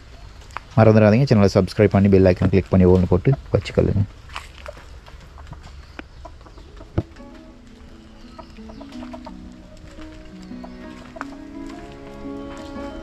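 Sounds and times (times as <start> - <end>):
chickens clucking: 2.6 - 13.0
background music stepping melody: 5.7 - 13.0.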